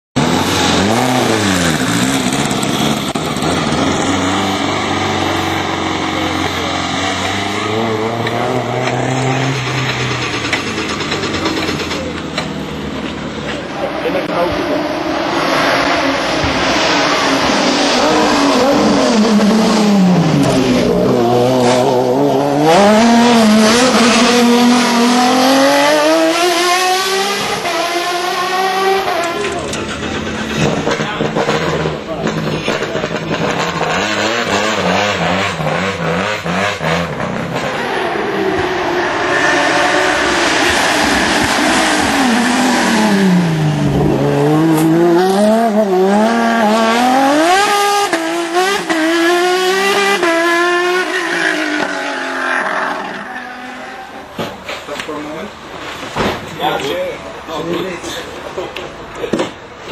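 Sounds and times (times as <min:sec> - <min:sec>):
racing car engines revving: 0:00.2 - 0:59.9.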